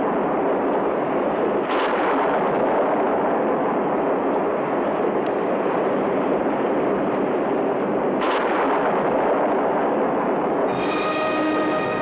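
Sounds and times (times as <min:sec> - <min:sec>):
rushing roar: 0:10.7 - 0:12.0.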